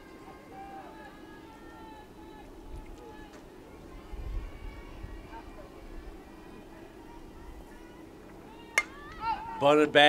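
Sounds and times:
faint voices: 0.0s - 10.0s
bat hitting softball crack: 8.7s - 9.3s.

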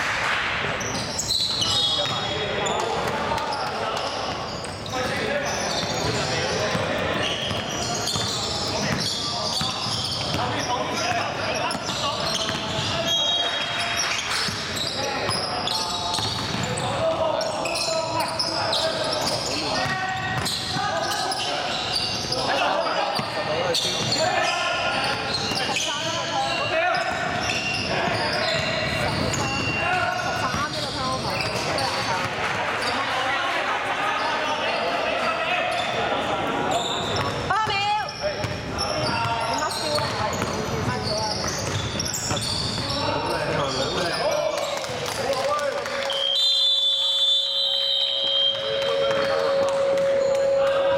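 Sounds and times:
players shouting: 48.3s - 50.9s.

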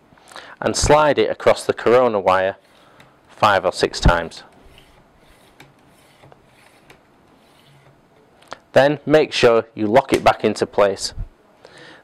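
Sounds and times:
plastic slider rubbing: 4.5s - 8.0s.

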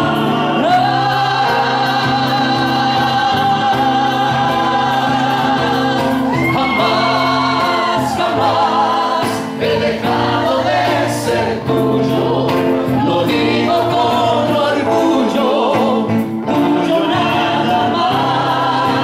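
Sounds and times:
acoustic guitar: 0.0s - 19.0s
men singing into microphones: 0.0s - 19.0s.

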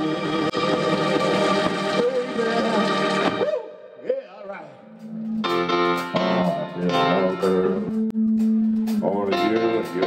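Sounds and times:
soul band with organ keyboard: 5.0s - 10.0s.

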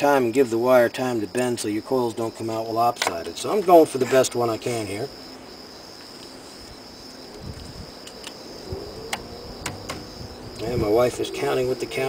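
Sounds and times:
high-pitched insect trill: 0.0s - 12.0s
soft low knocks: 9.0s - 10.4s.

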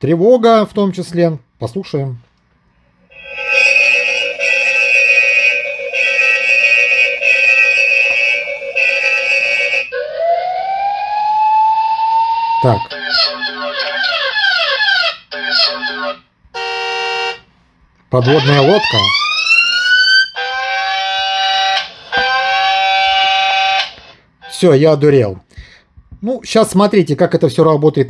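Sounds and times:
siren wail rising in pitch: 3.1s - 16.2s, 18.2s - 24.0s
electronic alarm tone: 3.1s - 17.4s, 18.2s - 24.7s
police siren yelps: 3.2s - 16.2s, 18.2s - 24.0s.

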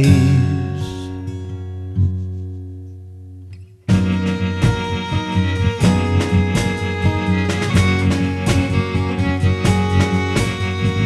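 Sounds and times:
acoustic guitar chord ringing: 0.0s - 11.0s
full band playing: 3.9s - 11.0s.

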